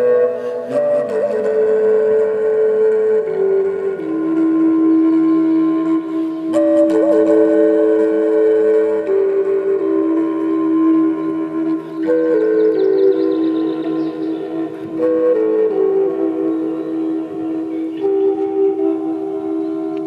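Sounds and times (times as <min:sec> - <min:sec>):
wooden flute melody: 0:00.0 - 0:20.0.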